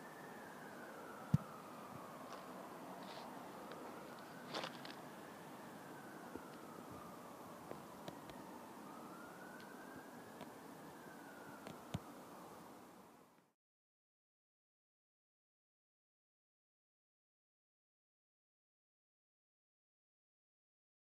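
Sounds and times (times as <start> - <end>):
faint siren wailing: 0.0 - 13.6.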